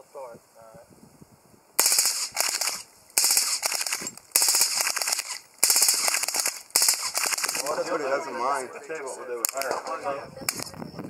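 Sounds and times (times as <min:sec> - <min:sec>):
suppressed submachine gun bursts: 0:01.8 - 0:07.7.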